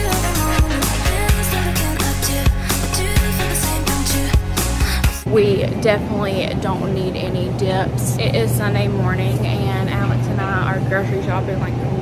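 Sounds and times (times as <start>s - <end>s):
woman talking: 5.2s - 12.0s.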